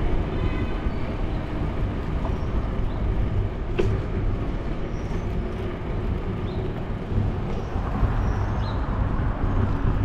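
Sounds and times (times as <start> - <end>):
bicycle tyre road noise: 0.0 - 10.0
wind rumble: 0.0 - 10.0.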